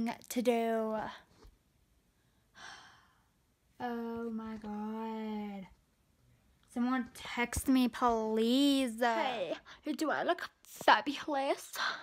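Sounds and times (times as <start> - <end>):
girl speaking: 0.0 - 1.2, 3.8 - 5.8, 6.7 - 12.0.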